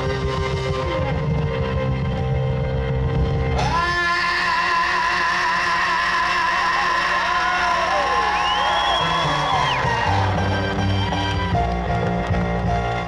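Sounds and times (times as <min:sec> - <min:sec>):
bass and drums: 0:00.0 - 0:05.8, 0:07.0 - 0:13.0.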